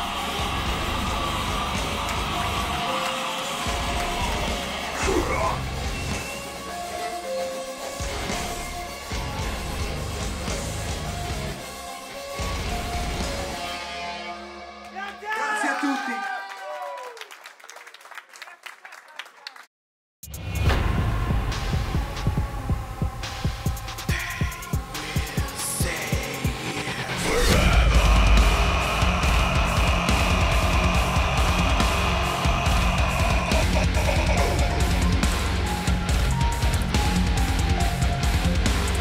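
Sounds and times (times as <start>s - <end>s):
live metal band: 0.0s - 6.9s, 21.5s - 39.0s
sustained synth drone: 26.8s - 35.8s.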